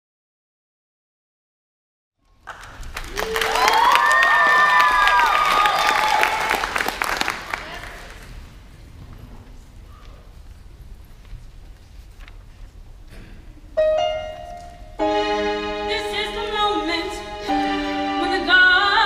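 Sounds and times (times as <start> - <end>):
low hum of hall: 2.2 - 19.0
audience applauding: 2.3 - 8.4
cheers and whoops: 3.1 - 6.8.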